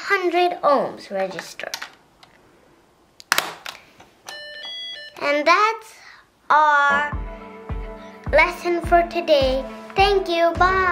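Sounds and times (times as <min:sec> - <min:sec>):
sharp plastic snap: 0:03.2 - 0:03.9.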